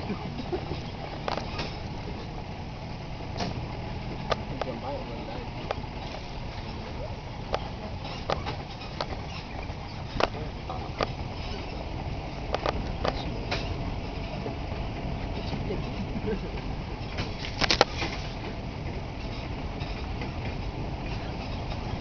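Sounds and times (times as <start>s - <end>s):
knocks and rattles over bumps: 0.0s - 22.0s
truck engine rumble: 0.0s - 22.0s.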